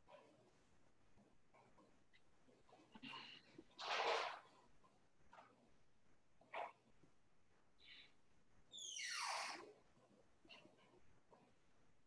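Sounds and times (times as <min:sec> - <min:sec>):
squeal dropping in pitch: 0:08.8 - 0:09.5.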